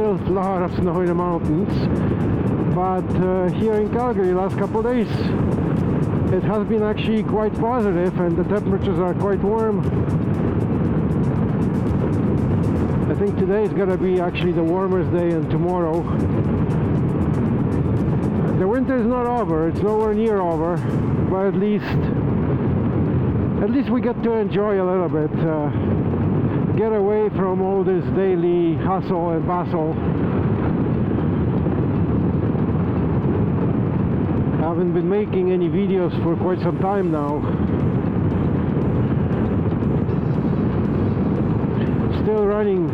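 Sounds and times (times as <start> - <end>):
motorcycle cruising on road: 0.0 - 42.9
wind noise on microphone: 0.0 - 42.9
motorcycle engine running: 36.9 - 42.7.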